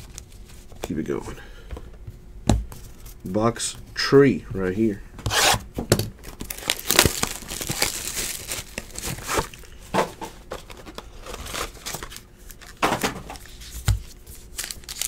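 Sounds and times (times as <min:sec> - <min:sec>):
packaging tearing and crinkling: 0:06.2 - 0:09.7, 0:10.9 - 0:13.7, 0:14.3 - 0:15.0.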